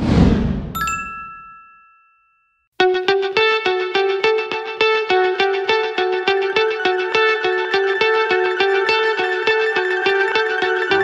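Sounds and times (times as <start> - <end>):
whoosh: 0.0 - 0.8
logo chime ding: 0.8 - 2.6
background music with plucked beat: 2.8 - 11.0.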